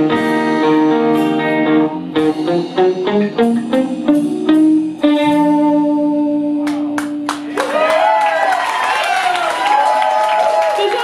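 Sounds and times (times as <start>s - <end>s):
live band final chord: 0.0s - 7.5s
audience whooping and cheering: 7.3s - 11.0s.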